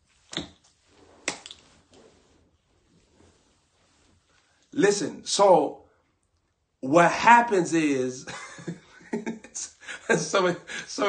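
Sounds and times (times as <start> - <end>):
finger snap: 1.2 - 1.6.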